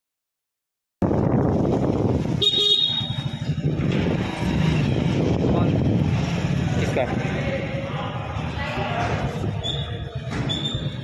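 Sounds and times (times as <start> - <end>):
traffic noise: 1.0 - 11.0
vehicle engine rumble: 1.0 - 11.0
vehicle horn toot: 2.4 - 3.4.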